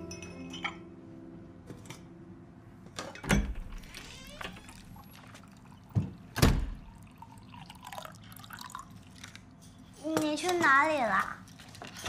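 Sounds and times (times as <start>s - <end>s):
water pouring into a glass: 4.7s - 6.0s, 6.8s - 9.4s.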